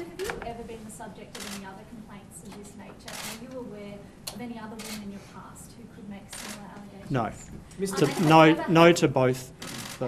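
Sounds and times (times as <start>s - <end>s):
camera shutter clicks: 1.4s - 1.7s, 3.1s - 3.4s, 6.3s - 6.6s, 9.6s - 10.0s.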